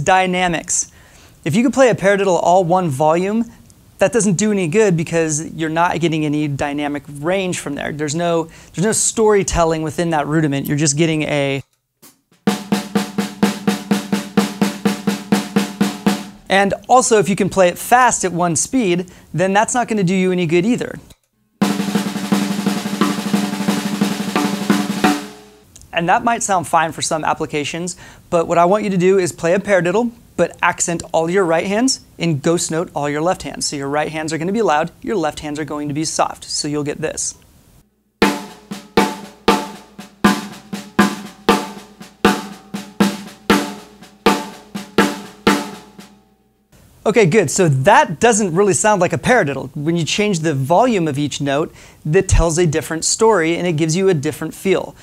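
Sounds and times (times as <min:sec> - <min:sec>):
snare drum paradiddle: 0:12.4 - 0:16.8, 0:21.6 - 0:25.6, 0:38.2 - 0:46.1.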